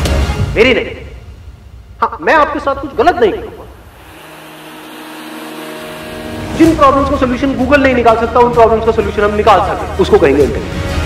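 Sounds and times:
synthesized chord: 3.2 - 9.9.

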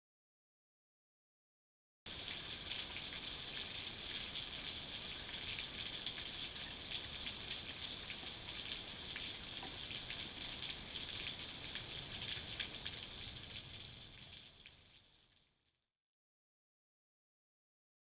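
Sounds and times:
heavy rain: 2.1 - 15.2.

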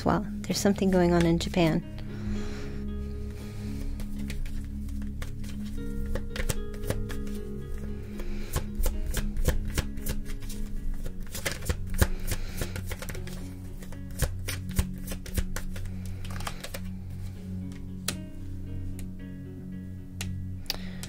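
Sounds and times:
background music: 0.0 - 21.0
cards shuffling: 3.3 - 18.2.

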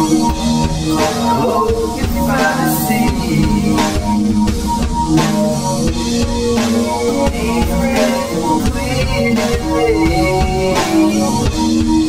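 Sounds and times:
held guitar-like notes: 0.0 - 12.0
drum beat: 0.2 - 12.0.

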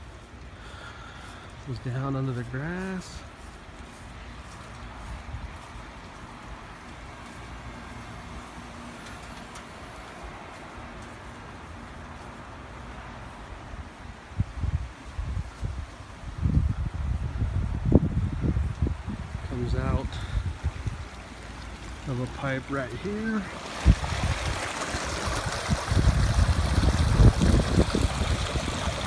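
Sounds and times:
faint outdoor hiss: 0.0 - 29.0.

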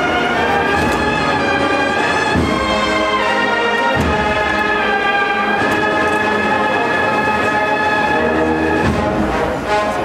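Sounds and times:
brass band holding a chord: 0.0 - 10.0.

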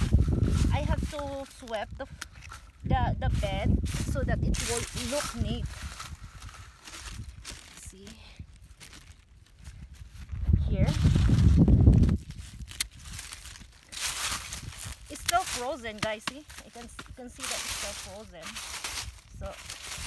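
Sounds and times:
dry leaves rustling: 0.0 - 20.0.

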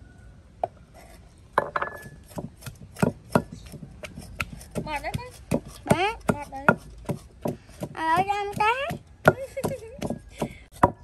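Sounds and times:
wooden pestle pounding in mortar: 1.6 - 11.0.

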